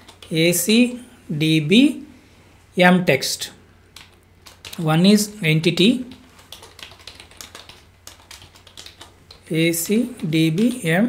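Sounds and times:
keyboard typing clicks: 0:00.0 - 0:00.3, 0:06.4 - 0:09.4.

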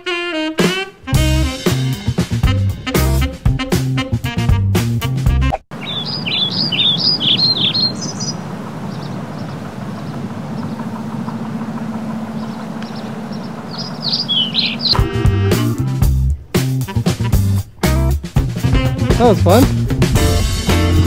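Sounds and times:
music: 0:00.0 - 0:05.6, 0:14.4 - 0:21.0
songbird chirping: 0:05.7 - 0:18.1
faint low hum: 0:07.8 - 0:14.9.

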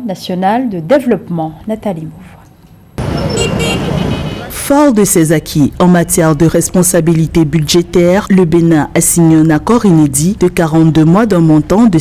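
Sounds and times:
brief high tones: 0:03.0 - 0:04.6
street traffic passing: 0:03.0 - 0:12.0.

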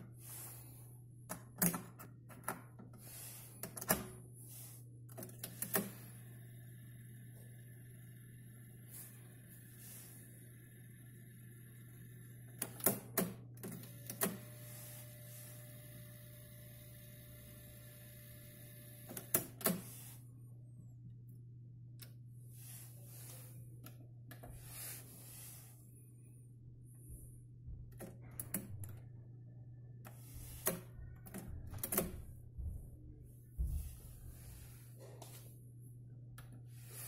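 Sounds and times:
tape mechanism whine and hiss: 0:03.0 - 0:20.3, 0:30.1 - 0:32.1.

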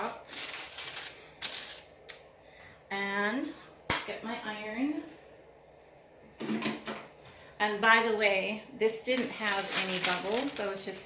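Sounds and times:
parchment paper crinkling: 0:00.0 - 0:02.2, 0:09.2 - 0:11.0.

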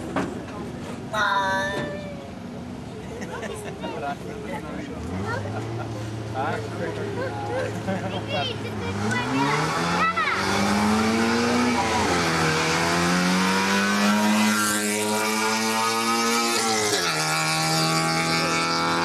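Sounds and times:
rally car engine accelerating: 0:07.2 - 0:19.0.

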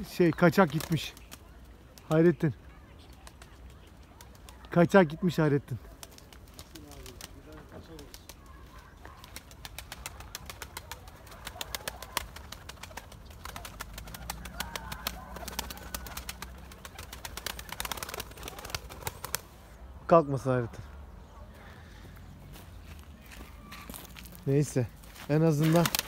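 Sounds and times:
pigeon wing flaps: 0:00.5 - 0:02.2, 0:03.0 - 0:04.8, 0:05.9 - 0:19.5, 0:25.5 - 0:26.0
faint bird calls: 0:20.7 - 0:24.4.

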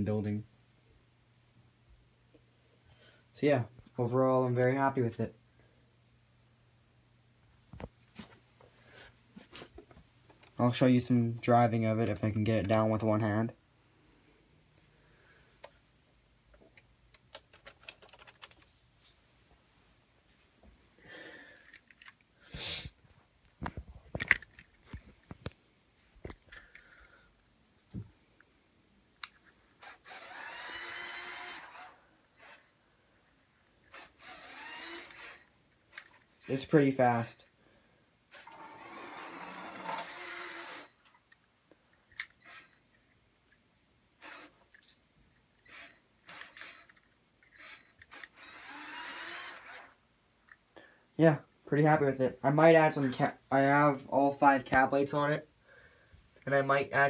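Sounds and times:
electric motors whining: 0:29.8 - 0:32.6, 0:33.9 - 0:36.1, 0:38.3 - 0:41.0, 0:45.6 - 0:50.0.

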